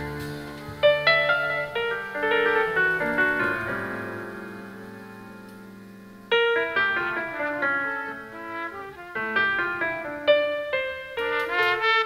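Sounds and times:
held piano chord: 0.0 - 12.0.

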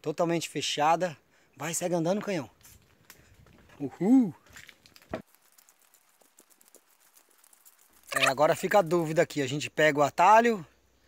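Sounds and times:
faint footsteps on trail: 1.5 - 9.5
crackles: 2.1 - 9.6.

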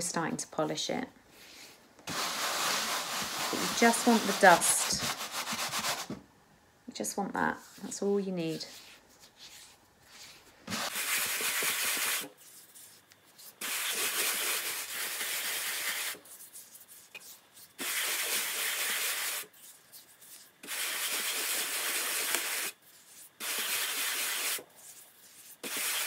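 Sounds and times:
hands brushing over dry mud ball: 2.1 - 6.1, 7.6 - 26.0.

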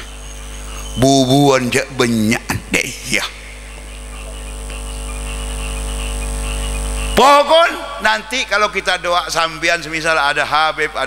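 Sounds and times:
electrical hum from sound system: 0.0 - 11.0.

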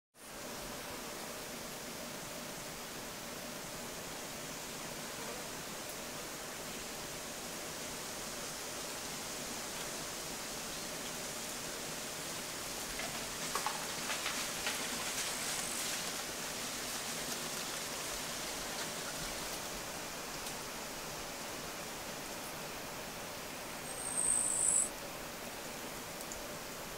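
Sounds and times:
outdoor ambient hiss: 0.2 - 26.9.

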